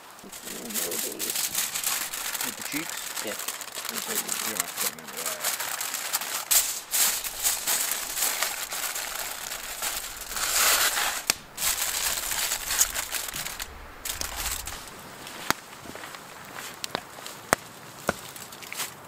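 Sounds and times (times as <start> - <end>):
aluminium foil crinkling: 0.0 - 16.1.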